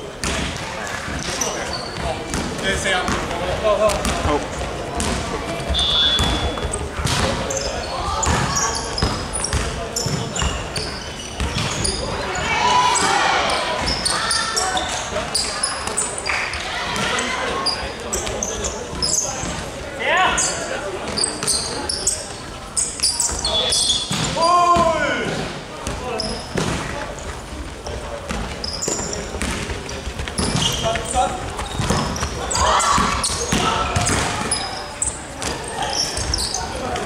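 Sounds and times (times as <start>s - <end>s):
sneaker squeaks: 0.2s - 3.3s, 3.9s - 25.2s, 25.8s - 27.4s, 28.2s - 37.0s.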